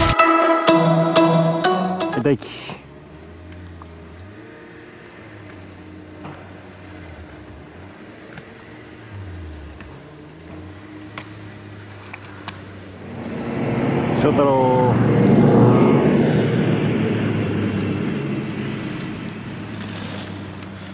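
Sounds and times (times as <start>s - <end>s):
engine running: 2.0s - 20.9s.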